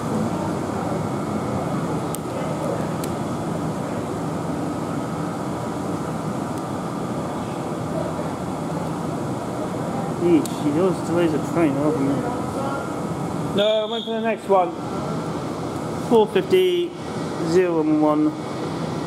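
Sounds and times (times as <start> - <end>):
faint voices: 0.0 - 3.0
train hum with faint high tone: 0.0 - 19.0.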